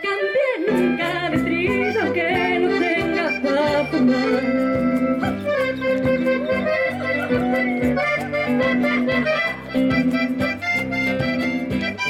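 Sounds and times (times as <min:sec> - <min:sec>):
woman singing into a microphone: 0:00.0 - 0:06.1
acoustic band with guitars: 0:00.6 - 0:12.0.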